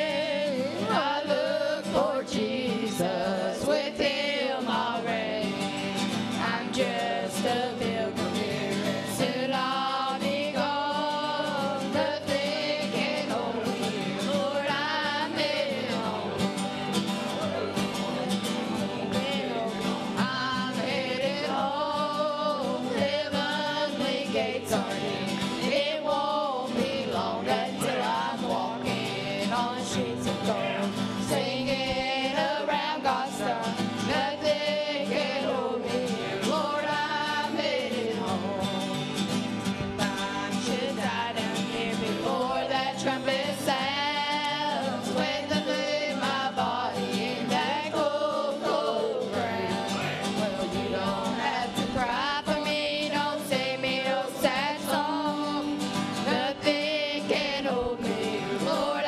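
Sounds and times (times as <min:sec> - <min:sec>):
acoustic guitar: 0:00.0 - 0:59.0
women singing gospel in harmony: 0:00.0 - 0:59.0.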